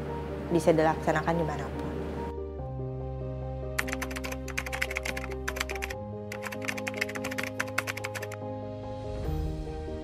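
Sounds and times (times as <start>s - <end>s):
soft background music: 0.0s - 10.0s
keyboard typing clicks: 3.8s - 8.4s.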